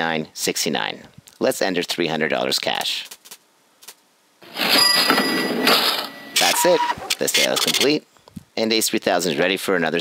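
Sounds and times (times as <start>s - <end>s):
cash register bell ring: 4.4s - 7.0s
cash drawer clatter: 4.4s - 7.8s.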